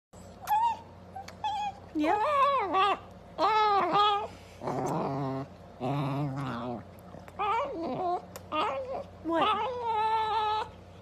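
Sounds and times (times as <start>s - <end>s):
small dog whining: 0.2s - 11.0s
lip-smacking kisses: 0.4s - 1.5s, 8.3s - 8.5s.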